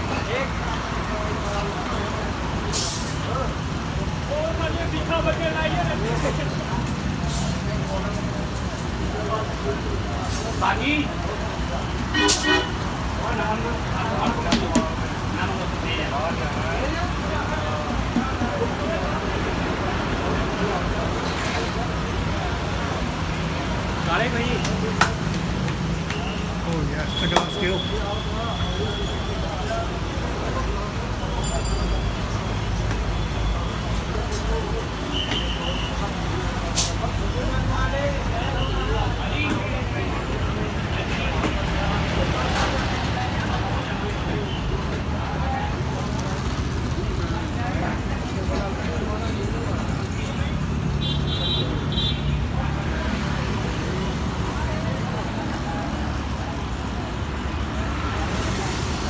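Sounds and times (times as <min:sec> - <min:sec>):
indistinct background chatter: 0:00.0 - 0:59.0
low rumble of traffic: 0:00.0 - 0:59.0
people talking: 0:00.0 - 0:59.0.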